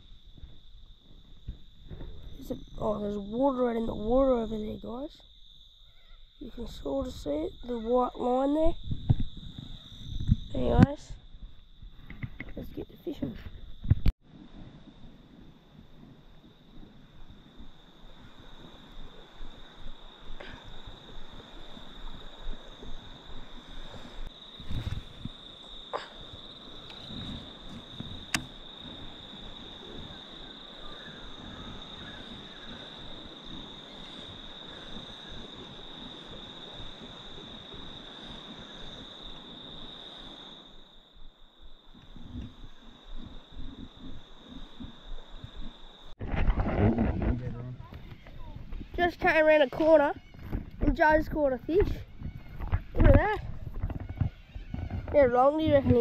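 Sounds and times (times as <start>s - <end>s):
shrill insect chorus: 0.0s - 46.5s, 47.4s - 56.0s.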